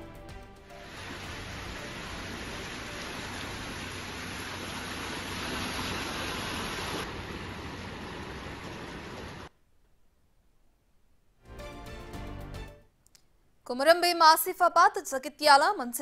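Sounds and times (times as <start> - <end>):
floodwater rushing: 0.6 - 9.5
heavy rain: 0.7 - 9.5.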